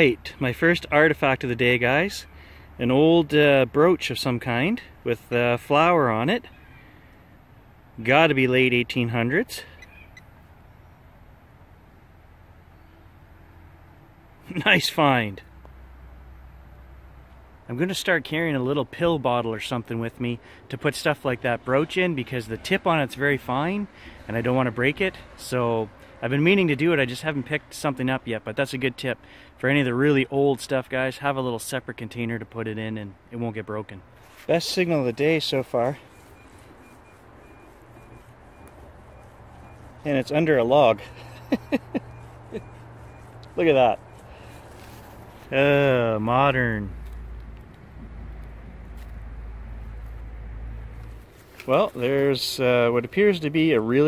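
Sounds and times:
metal detector beeps: 9.6 - 10.4, 35.6 - 44.9
low steady rumble: 31.6 - 54.0.

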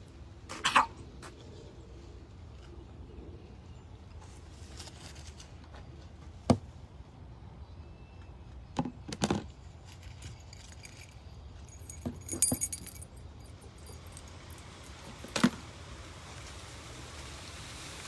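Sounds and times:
small metal objects jingling: 9.8 - 15.6
steady hiss: 14.5 - 18.0.

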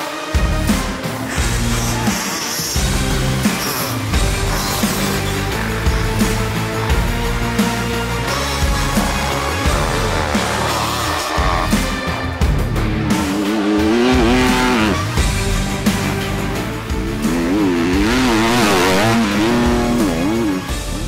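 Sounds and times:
background music: 0.0 - 21.0
dirt bike engines revving: 1.3 - 21.0.

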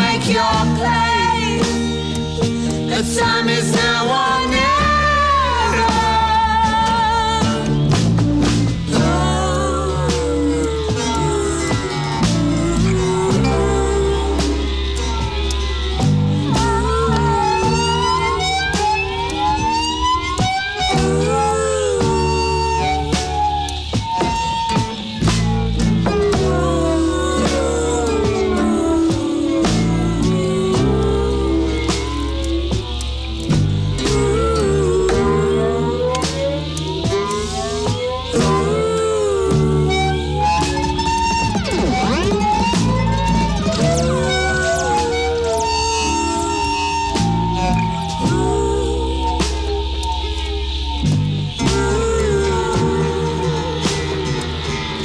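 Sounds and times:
low drone: 0.0 - 55.0
rock band playing slow song: 0.0 - 55.0
siren-like effects tone: 0.0 - 55.0.

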